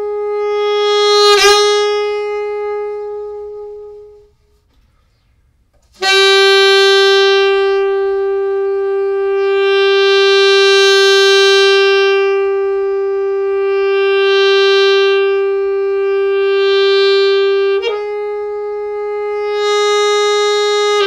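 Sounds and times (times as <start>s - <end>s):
alto saxophone held notes: 0.0s - 4.8s, 5.8s - 21.0s.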